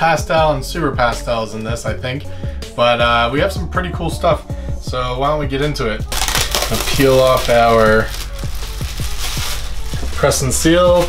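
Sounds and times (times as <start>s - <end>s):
background music with a beat: 0.0s - 11.0s
plastic wrap crinkling: 6.1s - 11.0s.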